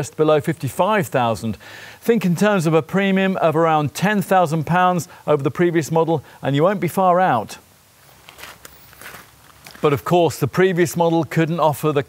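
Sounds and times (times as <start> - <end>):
man talking: 0.0 - 7.7, 9.7 - 12.0
footsteps on gravel: 8.0 - 10.1.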